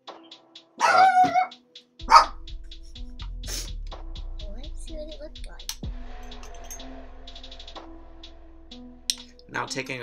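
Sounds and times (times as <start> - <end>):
background music with ticking beat: 0.0 - 10.0
dog barking: 0.8 - 2.4.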